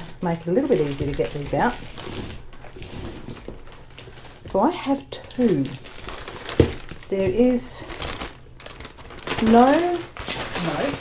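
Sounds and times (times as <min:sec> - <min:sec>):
plastic mailer bag crinkling: 0:00.0 - 0:11.0.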